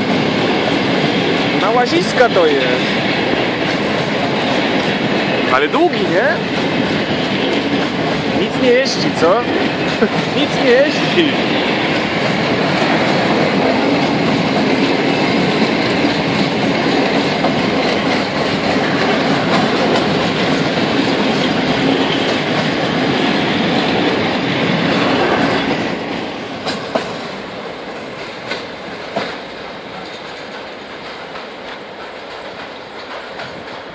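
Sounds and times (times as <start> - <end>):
freight train wheels clattering: 0.0 - 33.9
receding train rumble: 0.0 - 33.9.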